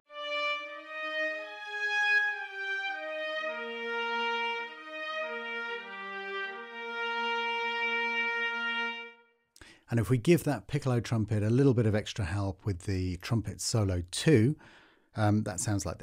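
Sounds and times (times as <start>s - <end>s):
trumpet and strings slow melody: 0.1s - 9.4s.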